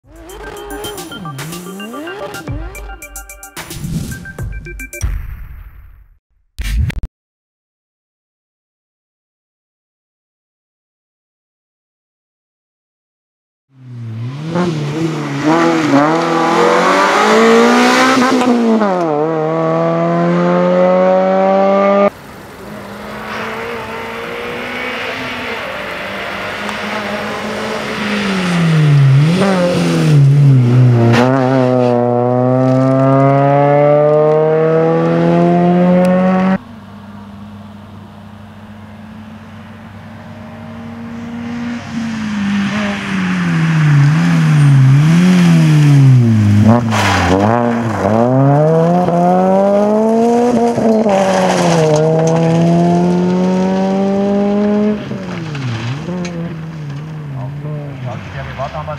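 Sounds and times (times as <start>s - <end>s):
rally car engine revving: 0.0s - 3.0s, 13.8s - 58.9s.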